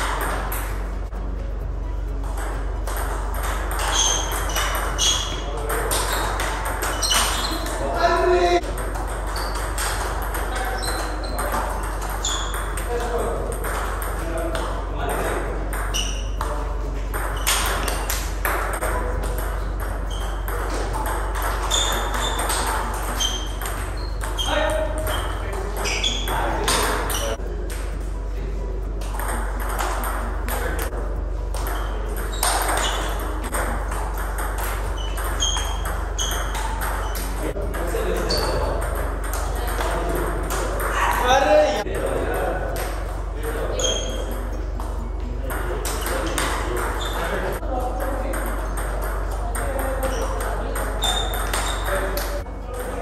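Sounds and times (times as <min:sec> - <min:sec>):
table tennis balls clicking: 0:00.0 - 0:01.2, 0:02.1 - 0:28.0, 0:28.9 - 0:53.0
low steady hum: 0:00.0 - 0:53.0.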